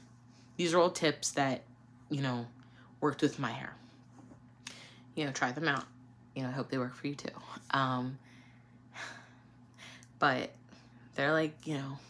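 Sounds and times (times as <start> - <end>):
woman breathing: 8.2 - 10.1.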